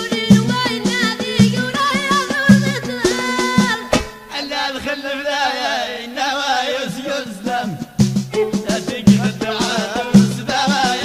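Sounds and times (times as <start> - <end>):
person singing folk melody: 0.0 - 11.0.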